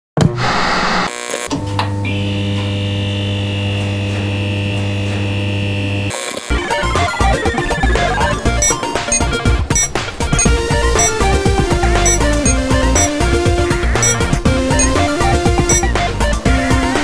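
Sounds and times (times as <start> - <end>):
tv static burst: 0.2 - 1.1
electric hum with high whine: 0.2 - 6.5
electronic video game music: 6.7 - 13.2, 14.0 - 16.1.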